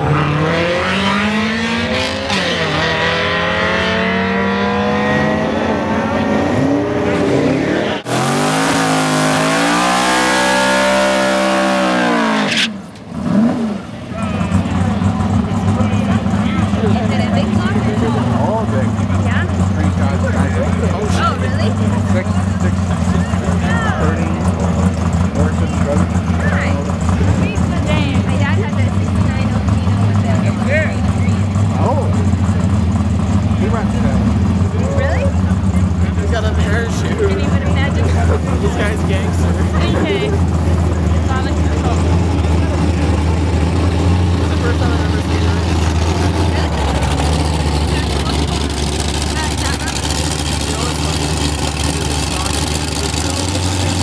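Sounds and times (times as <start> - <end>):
engine at steady high revs: 0.0 - 54.0
race cars accelerating hard: 0.0 - 54.0
tyres spinning on pavement: 13.9 - 54.0.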